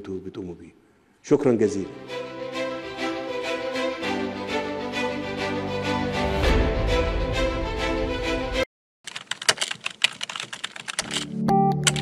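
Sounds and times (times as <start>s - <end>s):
computer keyboard typing: 9.1s - 12.0s.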